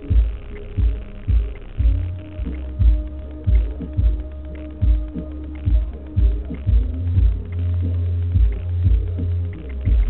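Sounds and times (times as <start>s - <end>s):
deep bass thumps: 0.0s - 10.0s
held bass line: 0.0s - 10.0s.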